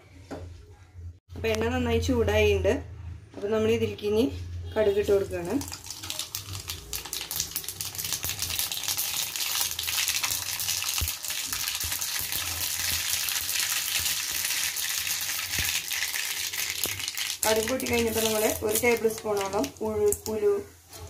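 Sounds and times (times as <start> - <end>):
hot oil sizzling: 4.9 - 20.6.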